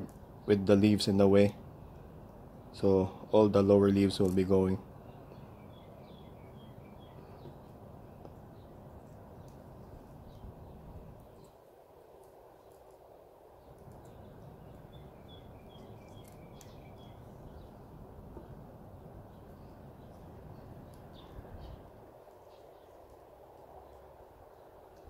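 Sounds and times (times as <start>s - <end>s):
birds chirping: 0.0s - 25.0s
low background noise: 0.0s - 25.0s.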